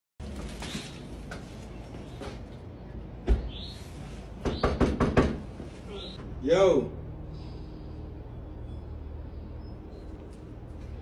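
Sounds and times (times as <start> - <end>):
knocking on door: 4.4 - 5.5.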